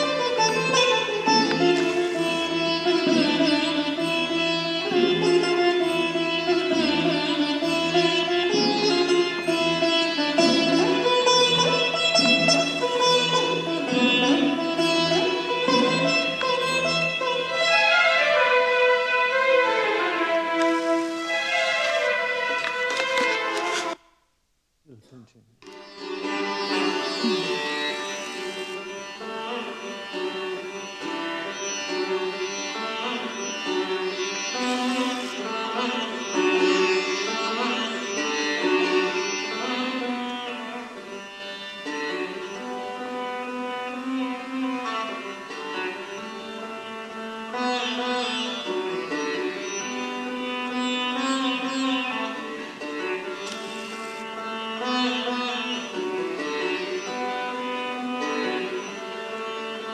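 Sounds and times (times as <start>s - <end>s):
orchestral strings: 0.0s - 24.0s, 25.7s - 59.9s
sitar playing melodic runs: 0.0s - 24.0s, 25.7s - 59.9s.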